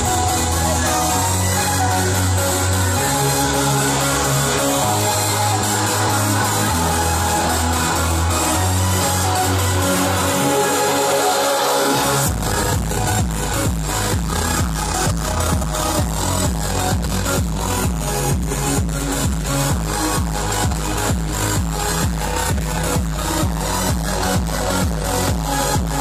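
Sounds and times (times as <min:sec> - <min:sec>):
electronic dance music: 0:00.0 - 0:26.0
kick drum beat: 0:12.3 - 0:26.0.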